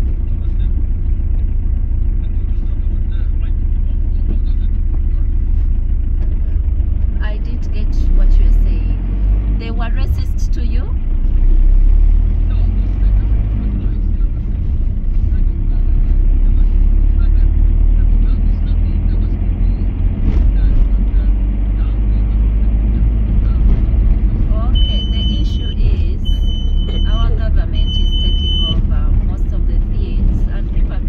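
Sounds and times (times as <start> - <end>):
engine and road rumble: 0.0 - 31.0.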